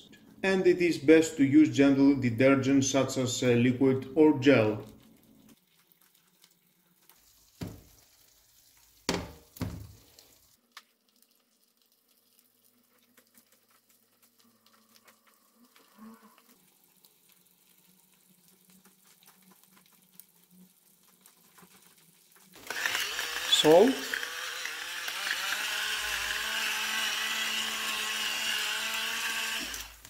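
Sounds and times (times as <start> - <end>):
eggs sizzling in oil: 3.1 - 30.0
pan knocking on glass hob: 9.1 - 10.0.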